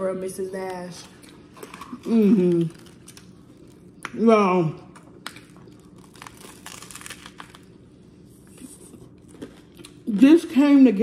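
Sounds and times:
crunching bites into toasted sandwich: 5.2 - 7.8.

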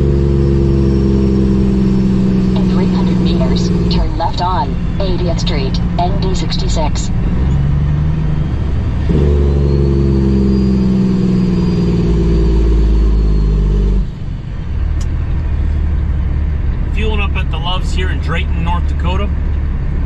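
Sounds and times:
deeper engine note: 0.0 - 20.0
diesel engine drone: 0.0 - 20.0.

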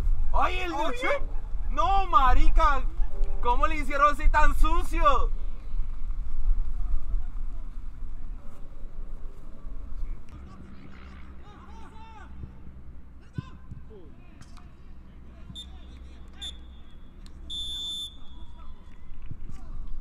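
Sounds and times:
distant shouts of players: 0.3 - 4.2, 15.3 - 19.7
referee's pea whistle: 15.5 - 18.6.

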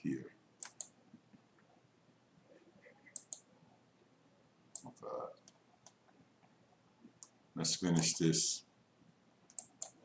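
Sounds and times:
computer mouse clicking: 0.6 - 1.0, 3.1 - 3.5, 4.7 - 6.0, 9.5 - 10.0.

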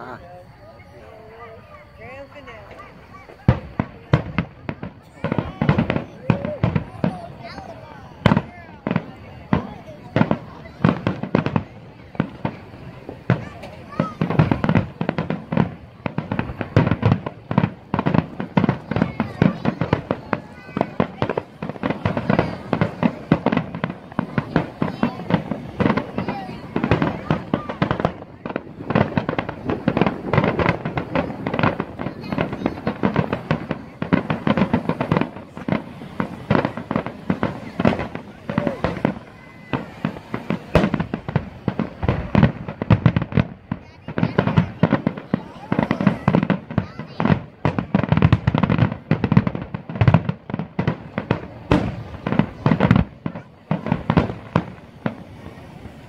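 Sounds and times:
firework shells booming and crackling: 0.0 - 56.0.

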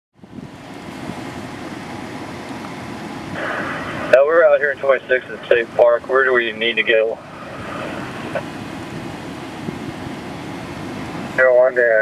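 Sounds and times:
wind on microphone: 0.2 - 1.5, 7.1 - 11.3
two-way radio static hiss: 3.3 - 12.0.

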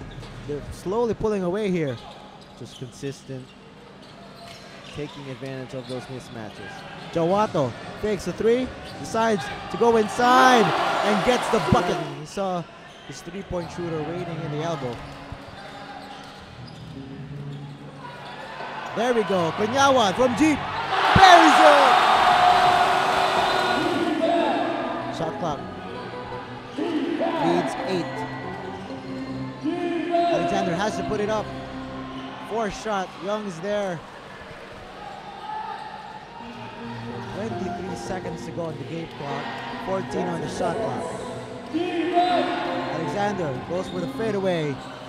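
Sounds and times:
arena crowd noise: 4.8 - 16.5, 17.8 - 45.0.

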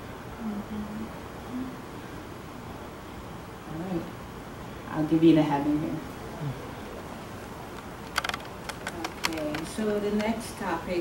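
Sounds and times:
low room hum: 0.0 - 11.0
laptop keys clicking: 8.0 - 10.3.

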